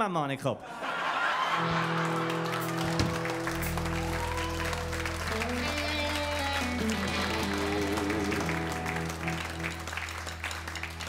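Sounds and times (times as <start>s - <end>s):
audience applauding: 1.2s - 11.0s
band playing held chords: 1.6s - 11.0s.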